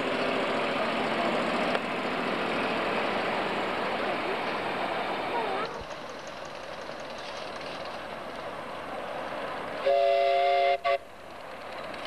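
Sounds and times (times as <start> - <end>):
steam locomotive hissing: 8.7 - 12.0
steam whistle chord: 9.8 - 11.0.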